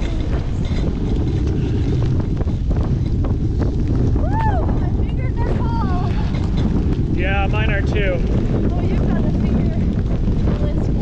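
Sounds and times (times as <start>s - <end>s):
bicycle riding on dirt road: 0.0s - 11.0s
wind rumble on microphone: 0.0s - 11.0s.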